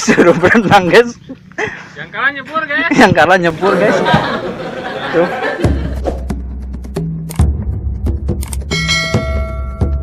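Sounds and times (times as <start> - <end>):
intro music with low beat: 5.5 - 10.0
bright bell-like chime: 8.7 - 10.0.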